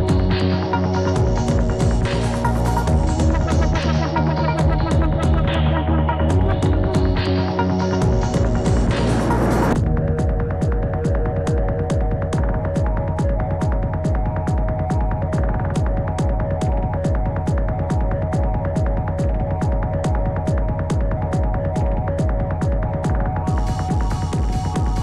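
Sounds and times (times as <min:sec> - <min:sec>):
electronic music with steady beat: 0:00.0 - 0:25.0.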